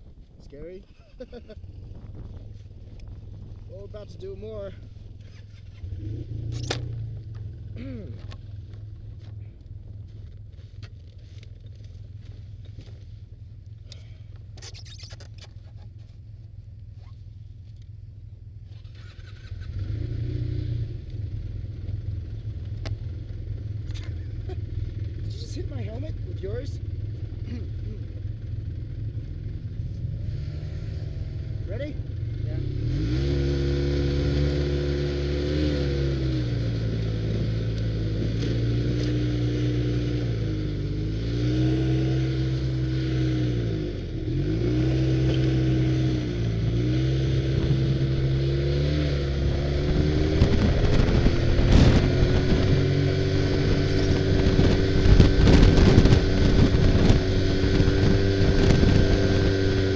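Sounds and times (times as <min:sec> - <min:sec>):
wind on microphone: 0:00.0 - 0:06.4, 0:45.8 - 0:59.9
snowmobile engine revving: 0:30.1 - 0:59.9.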